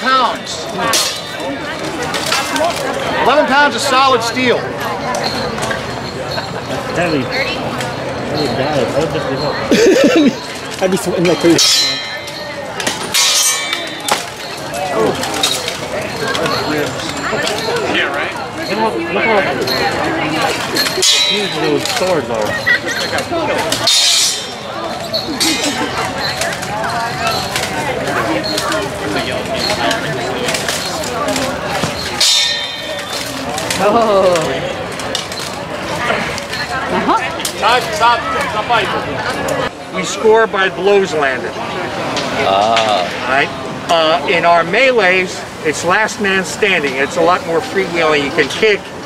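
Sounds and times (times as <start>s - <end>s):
people talking: 0.0s - 49.0s
swords clashing on armour: 12.8s - 14.6s, 23.6s - 24.6s.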